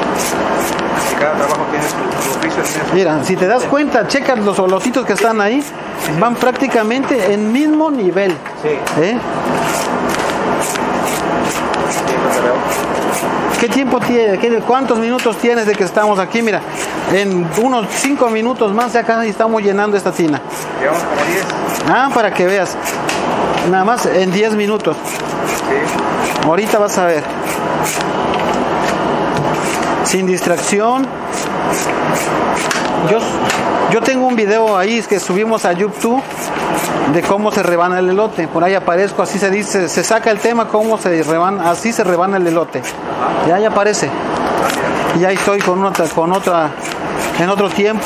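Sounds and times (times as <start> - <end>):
knife scraping corn cobs: 0.0 - 3.0, 4.5 - 7.8, 9.5 - 13.8, 15.3 - 19.0, 20.0 - 23.2, 24.3 - 28.1, 28.8 - 32.9, 34.4 - 37.9, 39.9 - 43.0, 45.5 - 48.0
man speaking: 1.1 - 9.3, 13.5 - 22.9, 23.6 - 27.3, 30.0 - 31.2, 33.0 - 36.3, 37.1 - 48.0.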